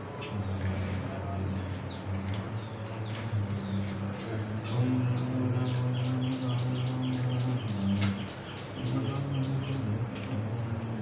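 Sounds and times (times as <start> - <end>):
men chanting in low monotone: 0.0 - 11.0
bird chirping: 0.1 - 10.1.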